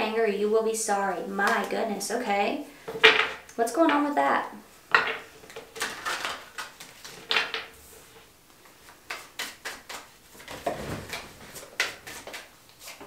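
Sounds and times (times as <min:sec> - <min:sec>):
cards being shuffled: 0:05.5 - 0:07.6, 0:08.6 - 0:13.0.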